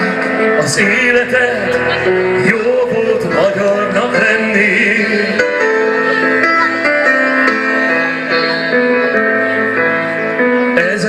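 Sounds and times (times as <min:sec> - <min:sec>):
man singing into microphone: 0:00.0 - 0:06.0, 0:10.5 - 0:11.0
instrumental accompaniment: 0:00.0 - 0:11.0.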